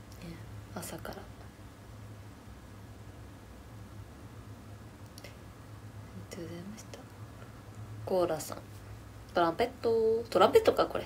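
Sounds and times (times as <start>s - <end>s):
steady low hum: 0.0s - 11.0s
woman speaking softly: 0.1s - 1.5s, 6.1s - 7.1s, 8.0s - 11.0s.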